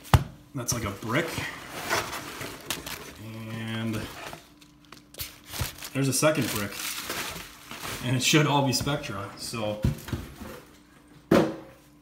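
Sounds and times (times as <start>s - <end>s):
paper wrapping crinkling: 1.0s - 8.6s.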